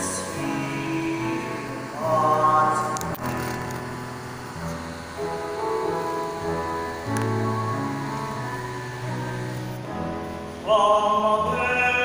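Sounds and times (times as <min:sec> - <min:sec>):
man singing: 0:00.0 - 0:03.6, 0:10.6 - 0:12.0
instrumental accompaniment: 0:00.0 - 0:12.0.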